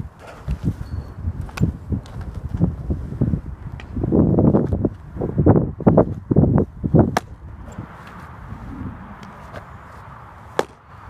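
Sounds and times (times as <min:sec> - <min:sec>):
baseball smacking into leather mitt: 0:07.1 - 0:07.4, 0:10.5 - 0:10.8.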